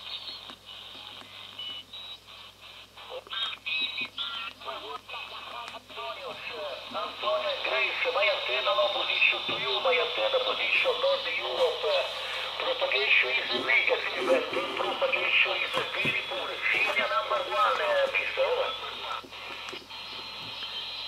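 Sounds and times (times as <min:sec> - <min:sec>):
radio band hiss: 0:00.0 - 0:21.0
thin radio voice: 0:03.1 - 0:19.3.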